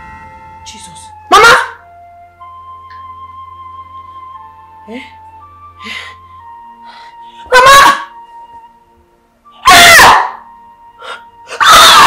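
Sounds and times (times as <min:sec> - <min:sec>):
quiet background music: 0:00.0 - 0:12.0.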